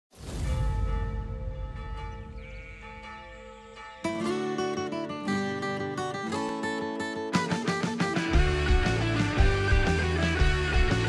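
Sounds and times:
church bells ringing: 0:00.7 - 0:04.9.

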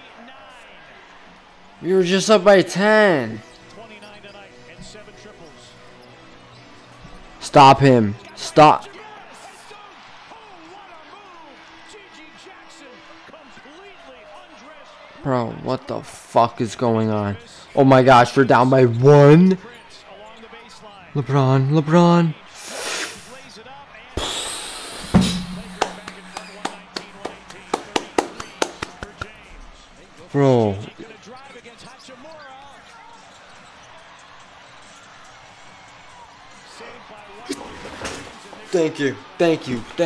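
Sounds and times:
arena crowd noise: 0:00.0 - 0:40.0
commentators talking: 0:01.8 - 0:06.2, 0:15.2 - 0:32.0
loud hit: 0:25.0 - 0:26.8
sneakers squeaking on court: 0:32.8 - 0:35.0.

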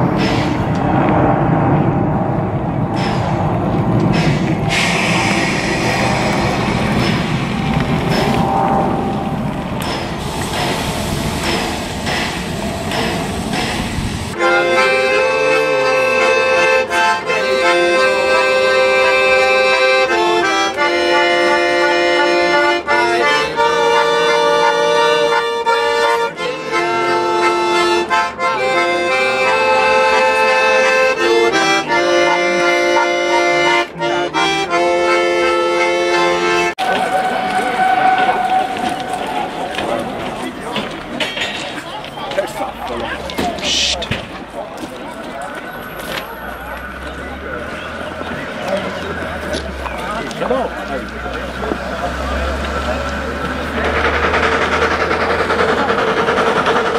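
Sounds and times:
steam locomotive exhaust beats: 0:00.0 - 0:41.2, 0:45.5 - 0:56.9
accordion playing folk tune: 0:14.3 - 0:37.1, 0:51.6 - 0:56.9.

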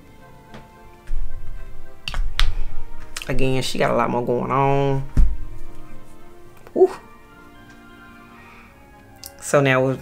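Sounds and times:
background music: 0:00.0 - 0:10.0
low handling thuds: 0:00.6 - 0:06.5.

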